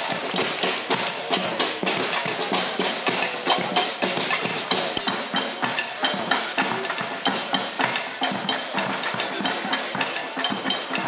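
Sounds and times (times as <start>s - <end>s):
drums: 0.0s - 11.0s
wood block strikes: 0.0s - 11.0s.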